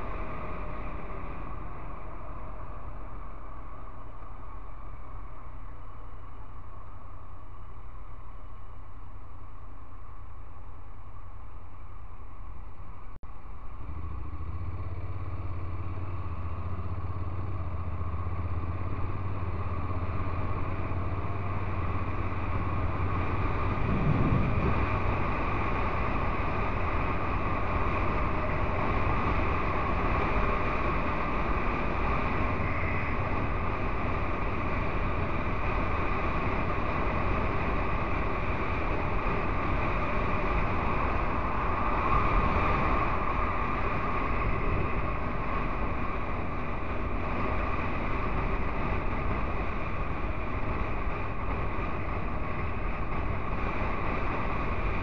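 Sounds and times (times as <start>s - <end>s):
wind and road noise: 0.0s - 55.0s
motorcycle engine cruising: 13.5s - 55.0s.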